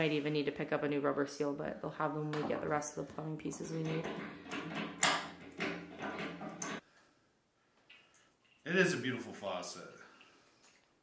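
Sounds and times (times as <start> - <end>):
wrench creaking and scraping metal: 2.4 - 6.8.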